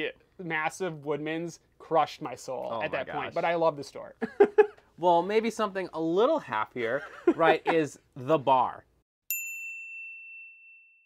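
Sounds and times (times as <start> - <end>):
high bell-like ding: 9.3 - 11.0.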